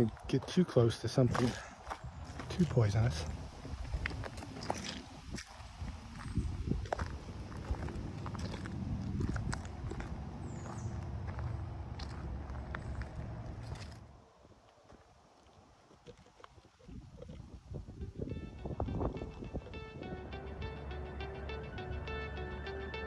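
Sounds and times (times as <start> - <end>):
footsteps on rocky dirt trail: 0.0 - 14.1, 14.7 - 17.2
low rumble: 2.0 - 14.1.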